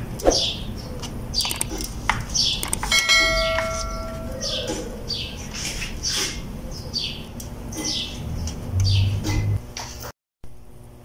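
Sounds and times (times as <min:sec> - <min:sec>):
bell-like chime: 0:02.9 - 0:04.4.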